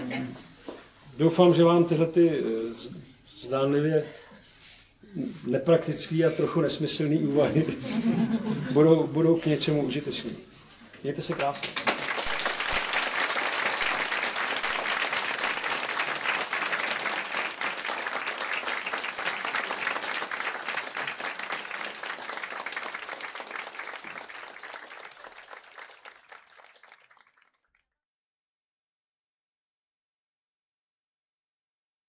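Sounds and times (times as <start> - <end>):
audience applauding: 11.2 - 27.8.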